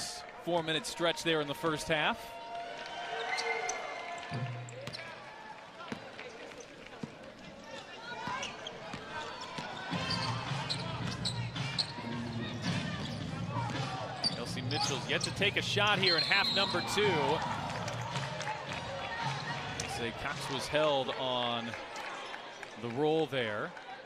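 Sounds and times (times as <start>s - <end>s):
sneakers squeaking: 4.7s - 5.3s, 5.9s - 18.1s
players calling out: 7.7s - 21.5s.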